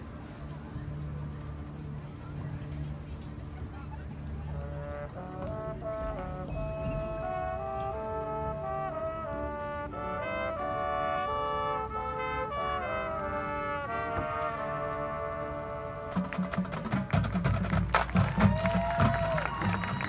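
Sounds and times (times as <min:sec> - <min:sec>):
marching band brass playing: 0:04.2 - 0:20.0.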